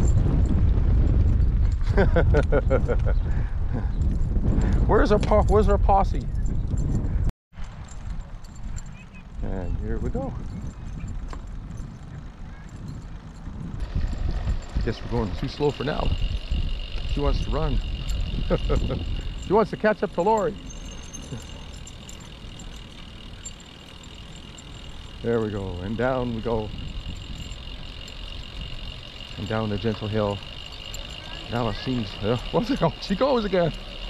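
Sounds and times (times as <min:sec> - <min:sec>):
wind on microphone: 0:00.0 - 0:34.0
trike rolling on pavement: 0:07.6 - 0:34.0
tyres rumbling on asphalt: 0:09.3 - 0:34.0
faint high whine: 0:13.8 - 0:34.0.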